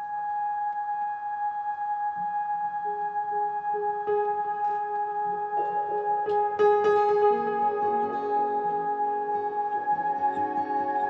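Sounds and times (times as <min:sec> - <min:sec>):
synthesizer holding steady note: 0:00.0 - 0:11.0.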